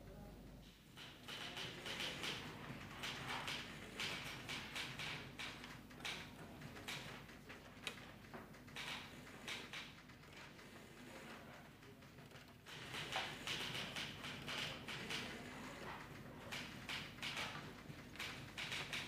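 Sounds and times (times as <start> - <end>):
faint taps and clicks: 4.5 - 12.6.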